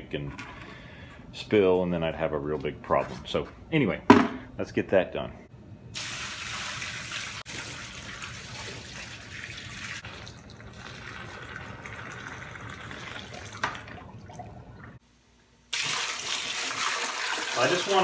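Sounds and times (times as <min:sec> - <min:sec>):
water pouring and splashing: 0:06.0 - 0:15.0, 0:15.7 - 0:18.0.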